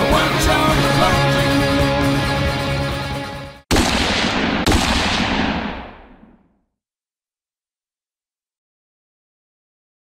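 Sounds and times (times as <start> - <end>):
gunshots with echo: 3.7 - 6.6.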